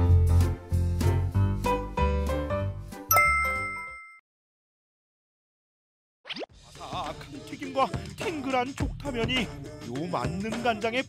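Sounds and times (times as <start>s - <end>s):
background music: 0.0s - 3.9s, 6.5s - 11.0s
bright bell-like ding: 3.1s - 4.2s.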